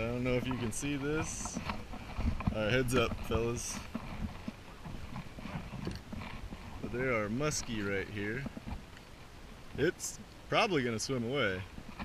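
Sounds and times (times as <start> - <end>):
footsteps on wooden boards: 0.0 - 9.2.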